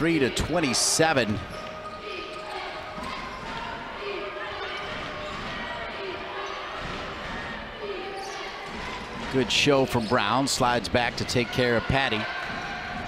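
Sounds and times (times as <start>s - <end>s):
murmur of crowd voices: 0.0s - 13.0s.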